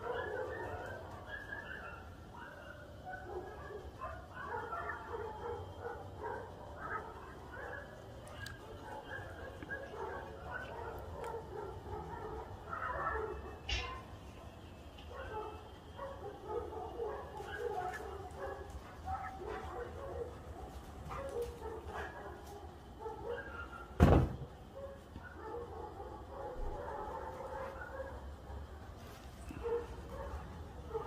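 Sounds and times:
dogs barking: 0:00.0 - 0:31.0.

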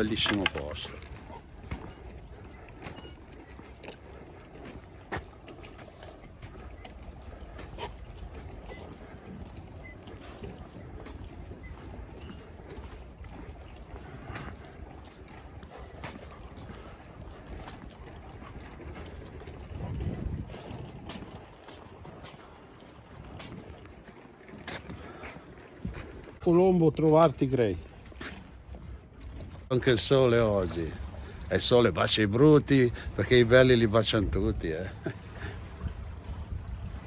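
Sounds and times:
footsteps on stone paving: 0:00.0 - 0:26.4
outdoor background noise: 0:00.0 - 0:37.0.

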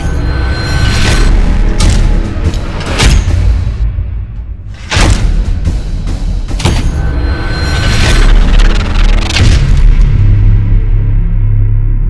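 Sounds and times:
cinematic music: 0:00.0 - 0:12.0.

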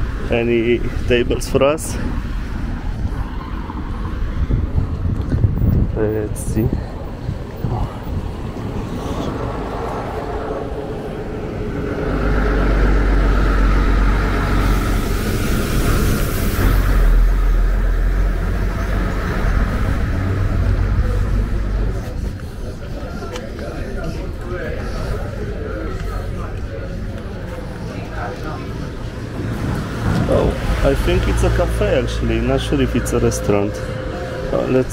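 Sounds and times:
passing vehicle rumble and tyre noise: 0:00.0 - 0:34.9.

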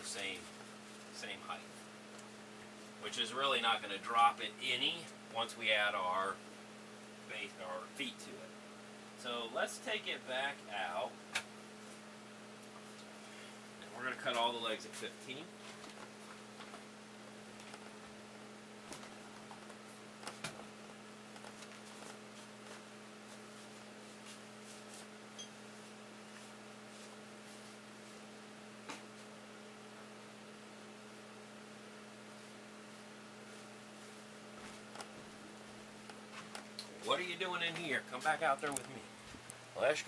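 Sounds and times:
faint electrical hum: 0:00.0 - 0:40.0.

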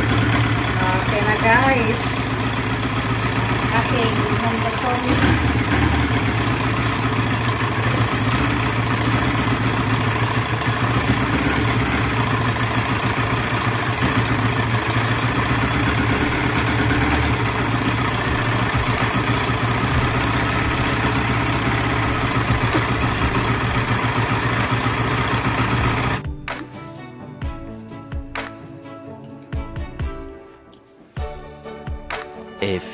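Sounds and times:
motorcycle engine idling: 0:00.0 - 0:26.3
music: 0:26.2 - 0:32.9.

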